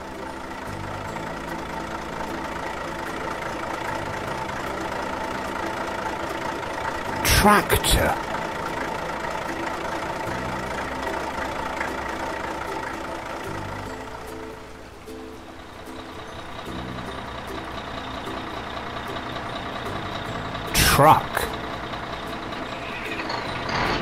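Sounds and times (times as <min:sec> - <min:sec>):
cartoon tractor engine running: 0:00.0 - 0:24.0
cartoon truck engine: 0:00.0 - 0:24.0
light background music: 0:00.0 - 0:24.0.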